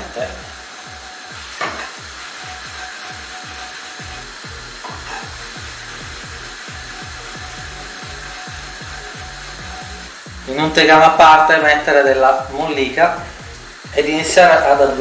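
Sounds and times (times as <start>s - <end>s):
background music with low beat: 0.0s - 15.0s
eggplant sizzling in frying pan: 0.0s - 15.0s.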